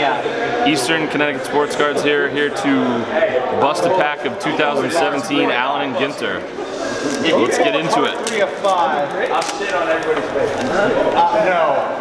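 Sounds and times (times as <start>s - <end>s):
people talking in a busy room: 0.0s - 12.0s.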